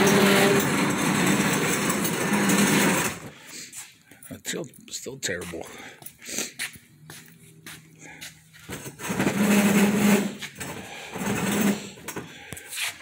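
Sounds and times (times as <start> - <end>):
metal table legs scraping concrete: 0.0 - 3.3, 8.8 - 11.9.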